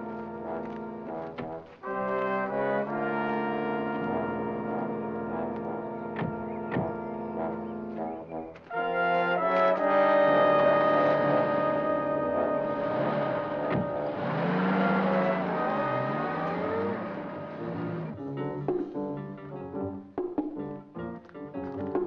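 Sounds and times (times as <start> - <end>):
dramatic brass score: 0.0 - 20.1.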